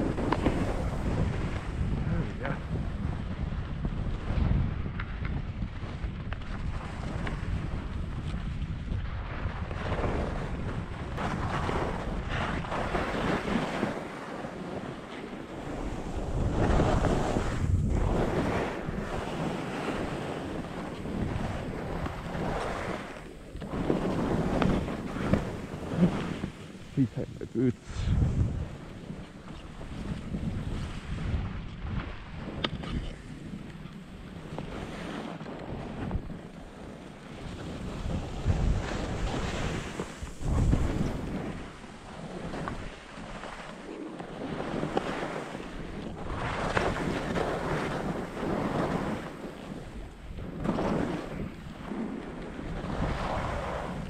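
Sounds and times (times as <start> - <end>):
skis scraping over snow: 0.0 - 8.9, 9.5 - 31.4, 32.0 - 54.0
wind rushing over microphone: 0.0 - 54.0.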